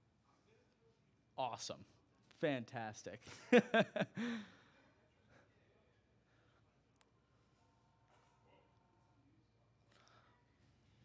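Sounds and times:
man laughing: 3.3s - 4.5s
man sighing: 4.1s - 4.6s.

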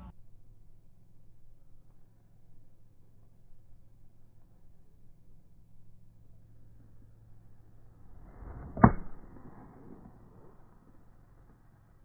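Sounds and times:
golf club swish: 8.1s - 11.6s
club striking ball crack: 8.2s - 10.8s.

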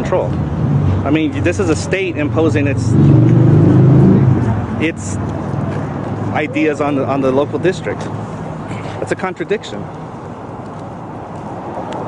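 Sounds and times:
car driving past: 2.7s - 4.8s.

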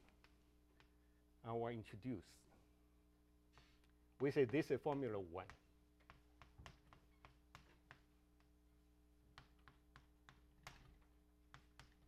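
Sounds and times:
low room hum: 0.0s - 12.0s
chalk tapping on blackboard: 3.5s - 8.5s, 11.5s - 12.0s.

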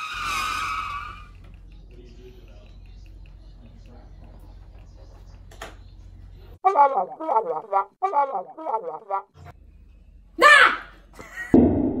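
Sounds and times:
high-pitched squeal: 0.0s - 1.3s.

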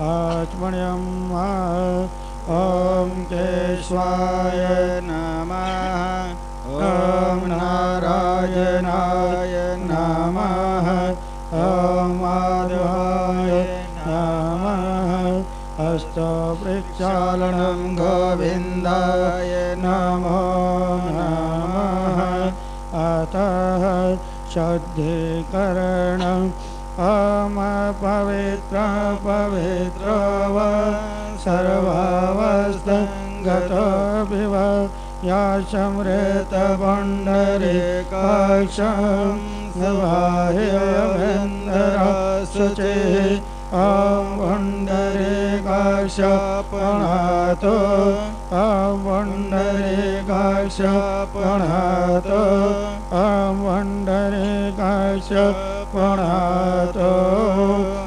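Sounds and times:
person chanting melodic phrases: 0.0s - 58.0s
steady held drone: 0.0s - 58.0s.

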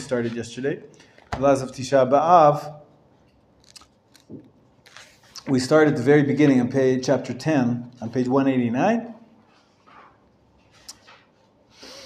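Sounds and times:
paper rustling: 3.6s - 5.4s.

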